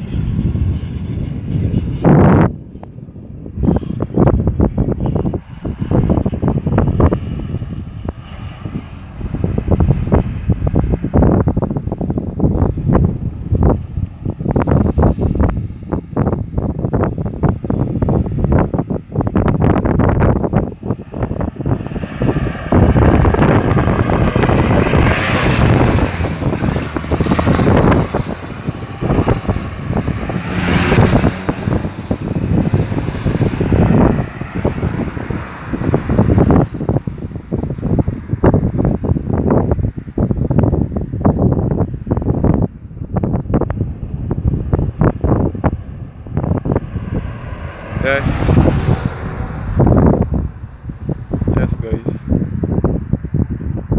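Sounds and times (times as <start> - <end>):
cars driving by: 0.0 - 53.9
wind buffeting microphone: 0.0 - 53.9.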